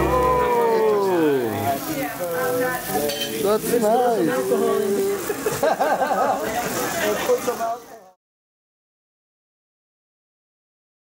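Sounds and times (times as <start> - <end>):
people's voices: 0.0 - 8.2
sparkler candle fizzing: 0.0 - 8.2.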